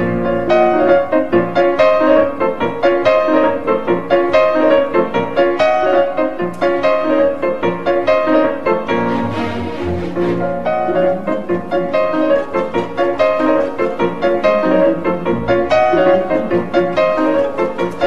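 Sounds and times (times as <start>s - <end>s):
instrumental background music: 0.0s - 18.0s.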